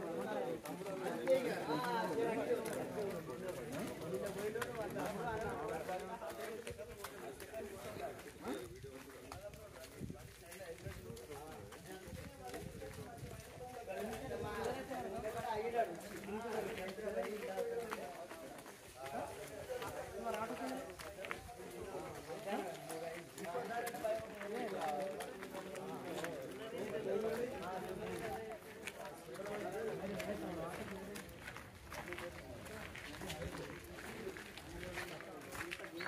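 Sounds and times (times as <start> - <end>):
footsteps on dirt lane: 0.0 - 36.0
people talking indistinctly: 0.0 - 36.0.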